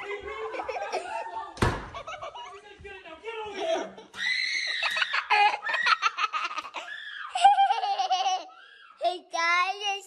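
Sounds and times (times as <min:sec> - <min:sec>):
person laughing hard: 0:04.9 - 0:08.5.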